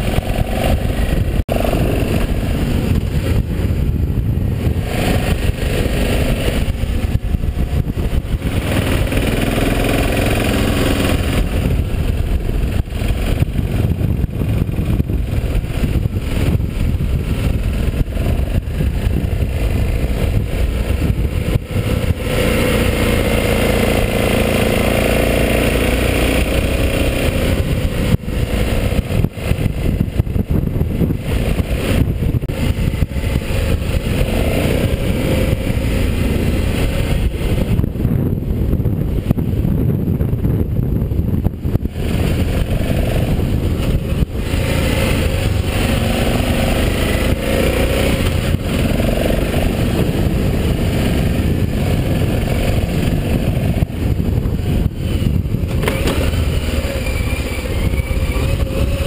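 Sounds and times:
motorcycle engine revving: 0.0s - 59.0s
steady low rumble: 0.0s - 59.0s.

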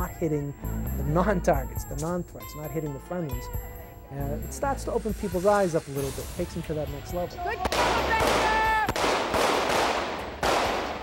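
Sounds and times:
pistol shots echoing: 7.6s - 11.0s.

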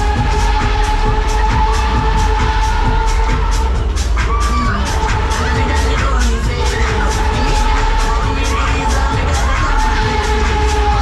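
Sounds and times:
loud dance music: 0.0s - 11.0s
riders cheering and shouting: 0.0s - 11.0s.

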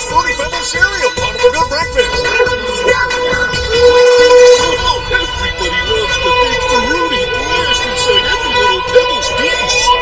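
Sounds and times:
constant metallic buzz: 0.0s - 10.0s
loud held tone: 0.0s - 10.0s.

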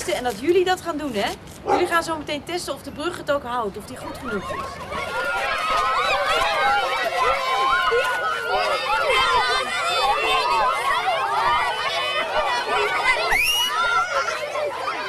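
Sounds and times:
children shouting and chattering: 3.0s - 15.0s.

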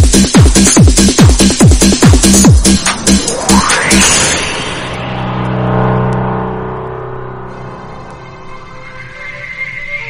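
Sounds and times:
electronic dance music: 0.0s - 10.0s
sustained low synthesizer tone: 2.6s - 9.8s.

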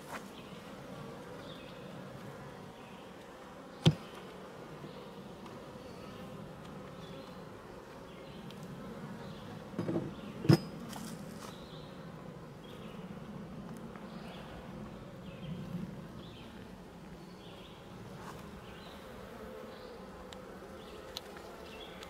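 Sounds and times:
honey bees buzzing: 0.0s - 22.0s.

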